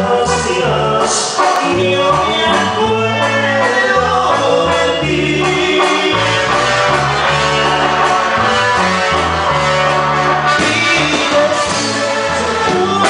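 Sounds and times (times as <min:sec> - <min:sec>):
bass line: 0:00.0 - 0:13.0
drums: 0:00.0 - 0:13.0
keyboards: 0:00.0 - 0:13.0
lead singer: 0:00.0 - 0:13.0.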